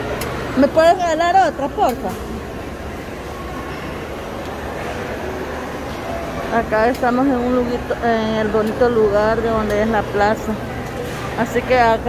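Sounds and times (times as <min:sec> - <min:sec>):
distant chatter: 0:00.0 - 0:12.0
ventilation hum: 0:00.0 - 0:12.0.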